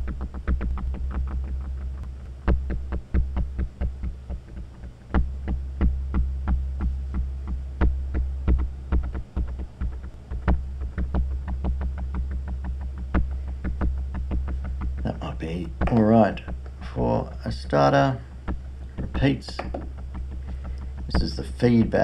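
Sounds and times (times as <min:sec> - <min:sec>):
synth bass pattern with delay: 0:00.0 - 0:22.0.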